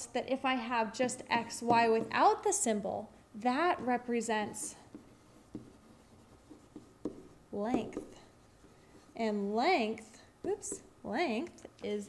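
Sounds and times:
stylus tapping and rubbing whiteboard: 1.0 - 2.6, 3.4 - 11.0.

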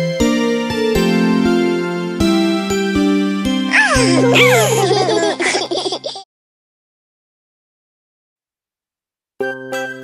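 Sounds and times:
cartoon children laughing: 3.7 - 6.3.

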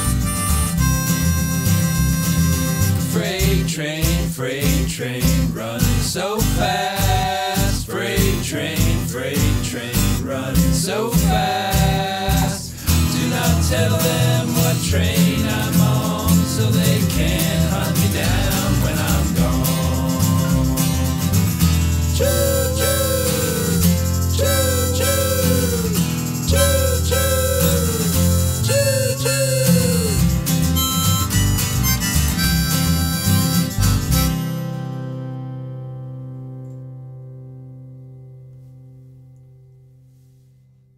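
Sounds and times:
acoustic guitars strumming: 0.0 - 40.5
falling whistle-like notes: 22.2 - 34.5.

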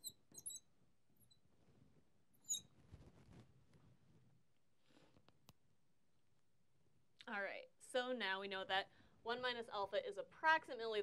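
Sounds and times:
marker squeaking on glass: 0.0 - 1.4, 2.4 - 2.8
soft rustle: 1.4 - 5.4.

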